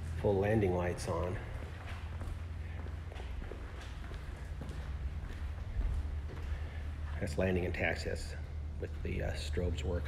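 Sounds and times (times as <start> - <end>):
faint footsteps: 0.0 - 9.1
low steady rumble: 0.0 - 10.0.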